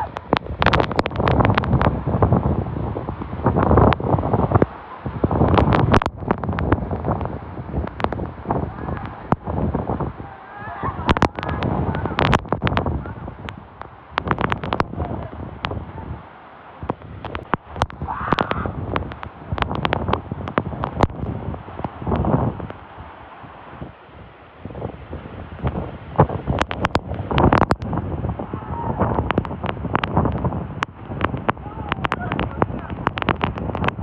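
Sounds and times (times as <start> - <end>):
waterfall rushing: 0.0 - 34.0
wind buffeting microphone: 0.0 - 34.0.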